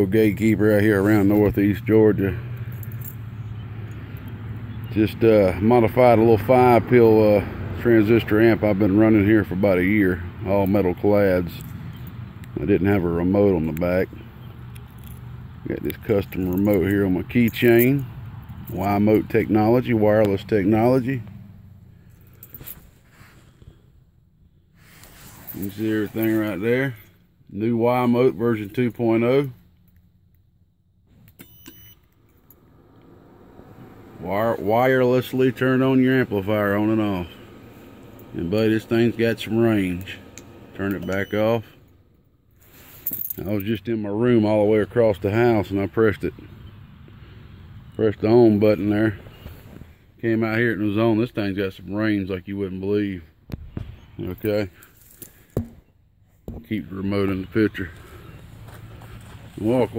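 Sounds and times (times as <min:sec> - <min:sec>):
faint outdoor background noise: 0:00.0 - 0:59.9
steady low hum: 0:20.5 - 0:43.7.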